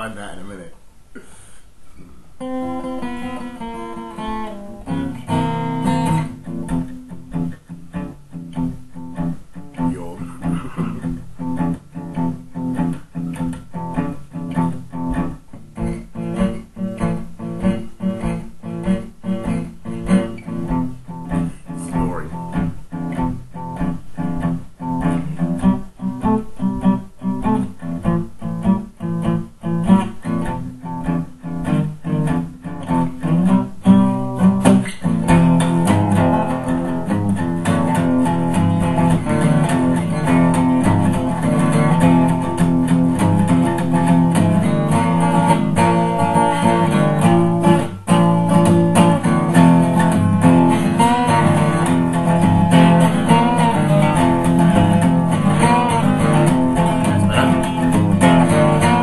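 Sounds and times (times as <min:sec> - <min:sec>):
acoustic guitar strumming blues: 0:02.4 - 0:59.0.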